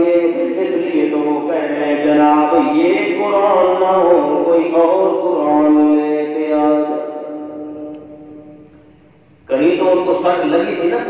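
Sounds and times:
man chanting into microphone: 0.0 - 8.6, 9.5 - 11.0.

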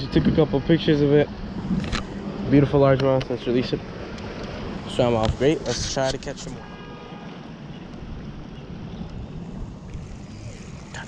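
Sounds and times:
wind buffeting microphone: 7.6 - 11.0.

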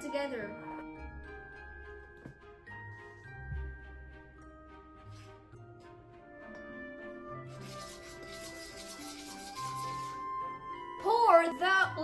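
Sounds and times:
background music with held notes: 0.0 - 12.0
metal spoon stirring in metal bowl: 7.5 - 10.2.

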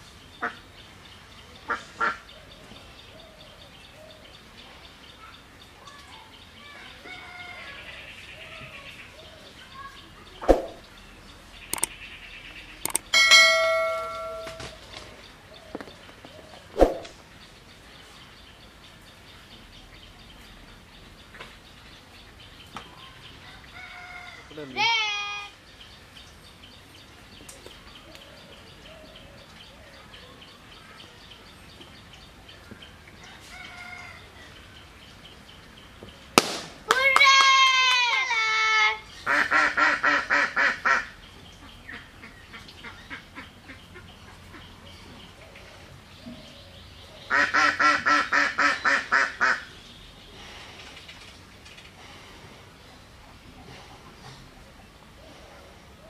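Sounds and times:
small birds chirping: 0.0 - 36.4, 38.8 - 56.0
sharp clicks: 11.7 - 12.0, 12.8 - 13.1.

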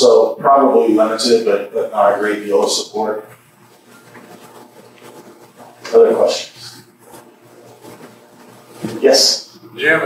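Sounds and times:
man speaking: 0.0 - 3.2, 5.8 - 6.8.

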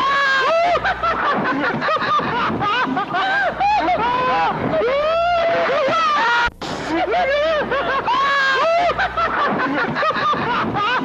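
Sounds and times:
people shrieking and laughing: 0.0 - 11.0.

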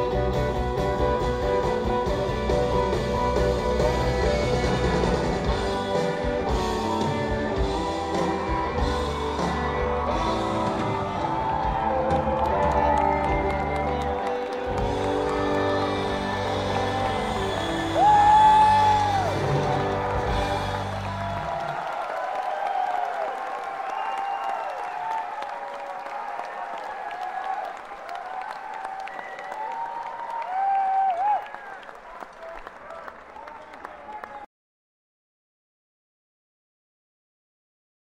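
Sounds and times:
live rock band playing: 0.0 - 21.5
audience cheering: 3.8 - 34.5
loud whistle: 23.8 - 25.0.

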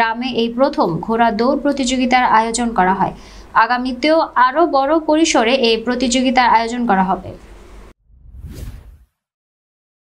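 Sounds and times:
whoosh sound effect: 8.0 - 9.1.

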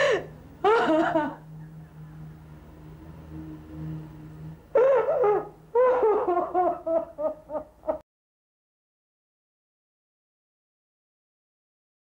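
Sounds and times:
woman sobbing: 0.0 - 1.7, 4.7 - 8.0
faint low steady hum: 0.0 - 8.0.

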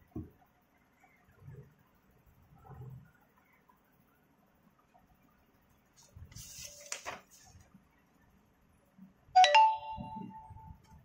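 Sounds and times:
rising two-note electronic chime: 9.4 - 10.6.

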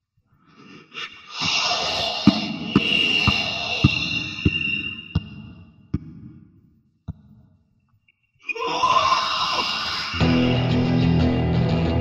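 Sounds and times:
harsh shrieking scream: 1.0 - 5.2, 8.4 - 10.6.

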